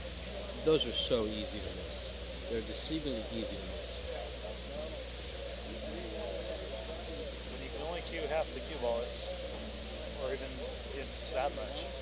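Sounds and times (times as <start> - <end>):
background chatter of voices: 0.0 - 12.0
steady low hum: 0.0 - 12.0.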